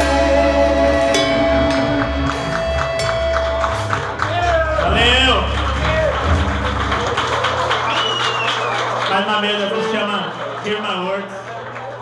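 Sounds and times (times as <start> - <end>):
heavy metal band chord: 0.0 - 7.0.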